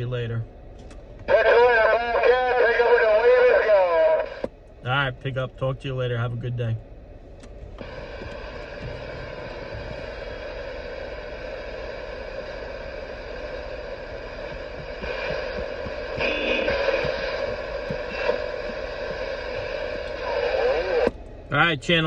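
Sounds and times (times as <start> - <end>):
radio static hiss: 1.2 - 6.8, 7.8 - 22.0
radio click: 14.4 - 21.2.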